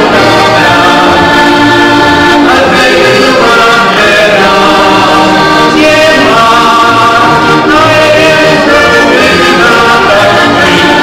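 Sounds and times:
button accordion playing folk tune: 0.0 - 11.0
man singing: 2.4 - 11.0.

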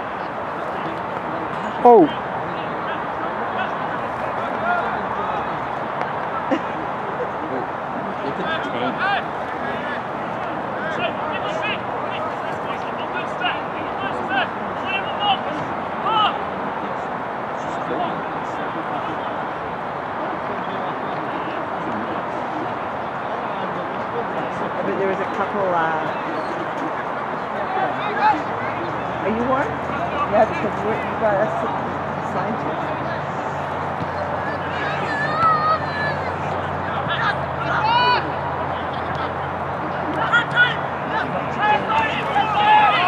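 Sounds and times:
players shouting: 0.0 - 16.5, 22.6 - 43.0.

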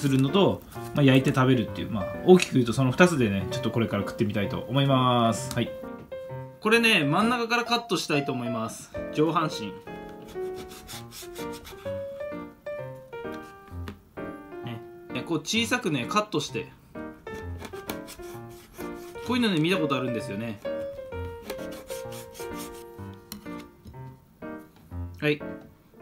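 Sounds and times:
background piano music: 0.0 - 26.0
knife sawing through fish: 10.3 - 12.0, 17.6 - 19.3, 21.4 - 22.9.

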